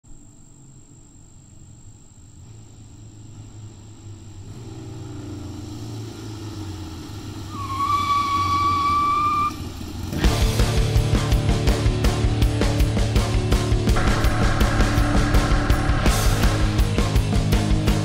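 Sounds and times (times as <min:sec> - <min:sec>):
motorcycles approaching: 0:02.4 - 0:18.0
steady high tone: 0:13.4 - 0:18.0.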